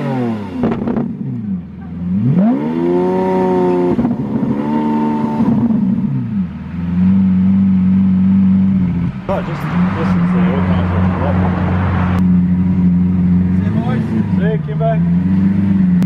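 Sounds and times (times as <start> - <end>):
sports car engine revving: 0.0 - 16.0.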